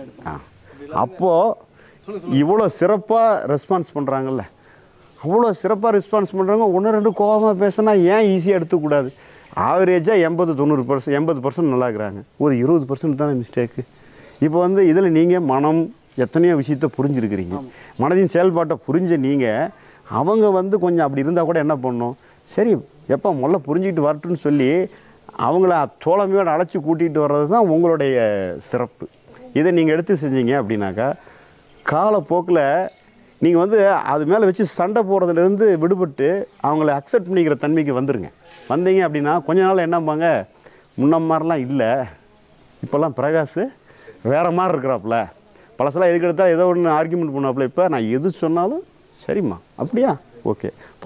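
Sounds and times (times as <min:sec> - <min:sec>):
man speaking: 0:00.0 - 0:04.6, 0:05.2 - 0:31.2, 0:31.8 - 0:42.2, 0:42.8 - 0:51.0
man talking: 0:00.0 - 0:04.6, 0:05.2 - 0:31.2, 0:31.9 - 0:42.2, 0:42.8 - 0:51.0
insects chirring: 0:00.0 - 0:51.0.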